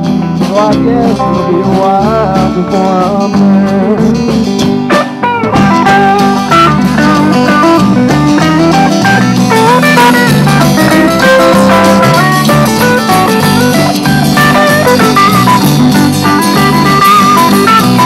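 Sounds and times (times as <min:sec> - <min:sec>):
acoustic rhythm guitar: 0:00.0 - 0:18.0
bass guitar: 0:00.0 - 0:18.0
electric guitar lead: 0:00.0 - 0:18.0.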